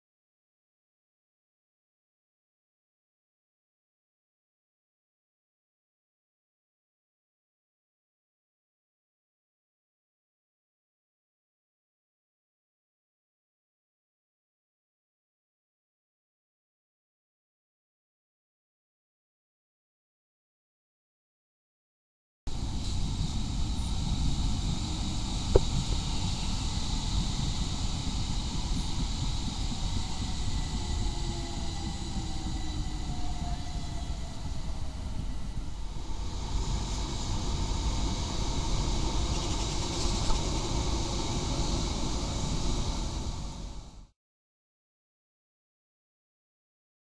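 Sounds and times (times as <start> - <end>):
train wheels rumbling on rails: 22.5 - 44.1.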